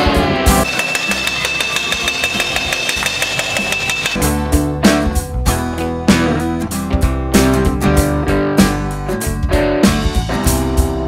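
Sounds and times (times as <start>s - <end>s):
metallic ringing: 0.6s - 4.2s
steel blades clanging on griddle: 0.6s - 4.2s.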